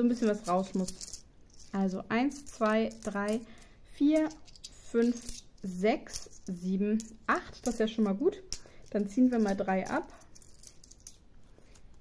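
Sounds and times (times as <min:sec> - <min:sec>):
coins clicking together: 0:00.0 - 0:05.5, 0:08.5 - 0:11.2.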